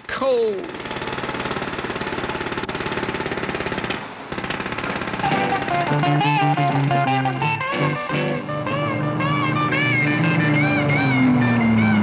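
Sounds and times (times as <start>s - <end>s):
cartoon engine rattle: 0.5s - 12.0s
music: 5.2s - 12.0s.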